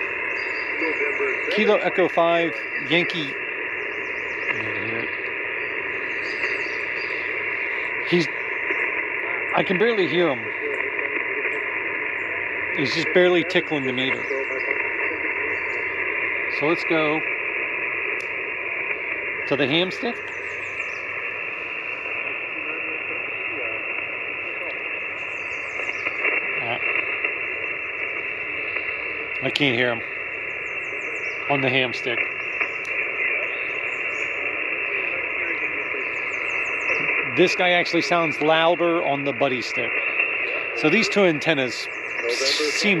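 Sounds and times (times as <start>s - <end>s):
radio static hiss: 0.0s - 43.0s
weak radio station: 0.0s - 43.0s.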